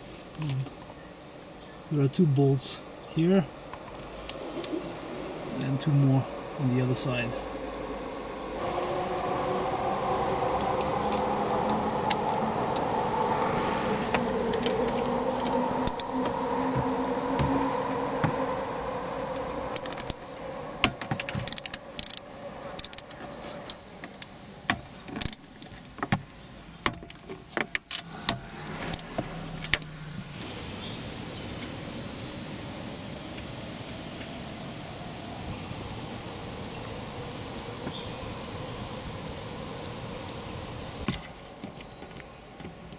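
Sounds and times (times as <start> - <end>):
steady drone with shifting pitch: 3.2 - 24.6, 28.0 - 41.2.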